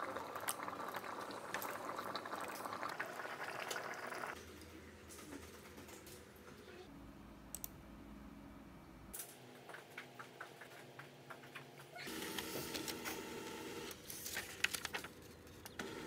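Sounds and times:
desktop printer printing: 12.1s - 14.0s, 15.8s - 16.0s.

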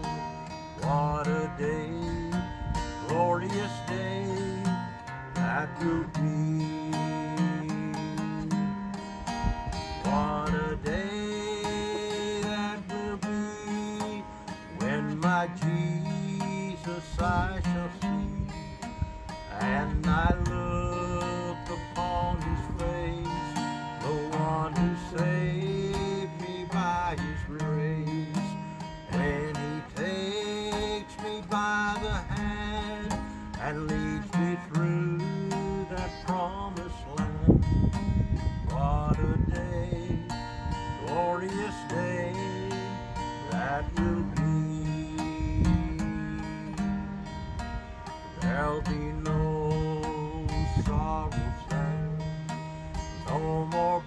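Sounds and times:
man singing: 0.0s - 8.8s, 9.8s - 37.9s, 38.6s - 47.0s, 48.3s - 54.0s
acoustic guitar strumming: 0.0s - 54.0s.

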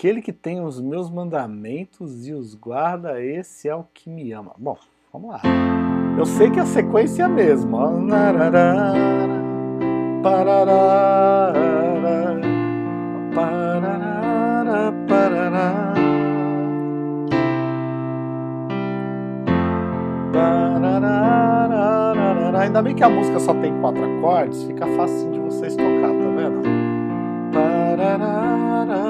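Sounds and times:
electronic keyboard piano chords: 5.4s - 29.0s.

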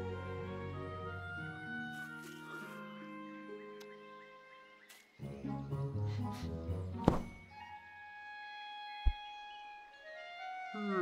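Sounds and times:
orchestral music with held notes: 0.0s - 11.0s.

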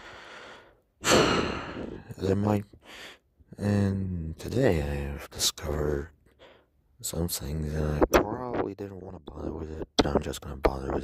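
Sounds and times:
man drawing breath: 0.0s - 2.1s, 2.8s - 3.3s
man sighing heavily: 0.0s - 2.1s.

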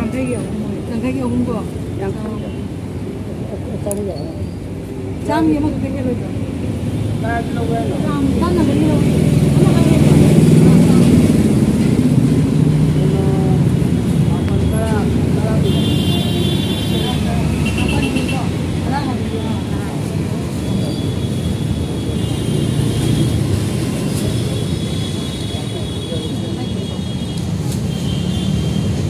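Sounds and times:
people talking: 0.0s - 2.7s, 3.3s - 4.5s, 5.2s - 6.5s, 7.2s - 21.2s, 23.8s - 27.9s
traffic rumble: 0.0s - 29.0s.

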